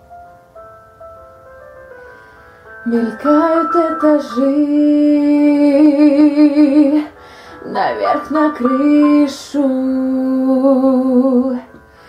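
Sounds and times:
soft piano notes: 0.0 - 12.0.

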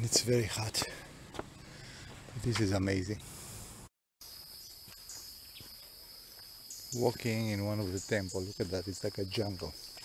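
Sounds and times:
insects droning: 4.2 - 10.0.

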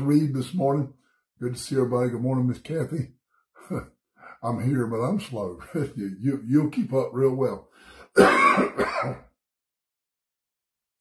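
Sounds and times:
man coughing into fist: 8.2 - 9.3.

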